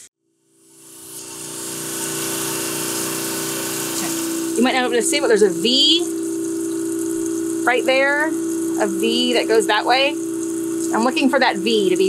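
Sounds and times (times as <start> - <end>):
grinding wheel humming: 0.7 - 12.0.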